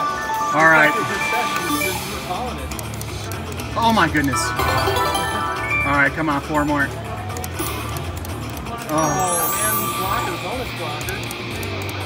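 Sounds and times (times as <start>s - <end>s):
slot machine bonus music: 0.0s - 2.4s, 4.3s - 7.1s, 9.0s - 10.7s.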